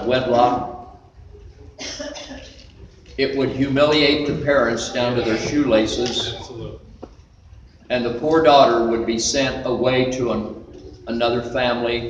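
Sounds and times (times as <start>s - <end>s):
short cough: 1.8s - 2.5s.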